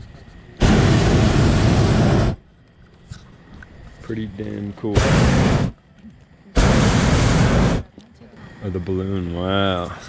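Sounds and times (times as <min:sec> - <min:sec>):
propane burner blasts: 0:00.0 - 0:02.5, 0:04.0 - 0:05.8, 0:06.5 - 0:10.0.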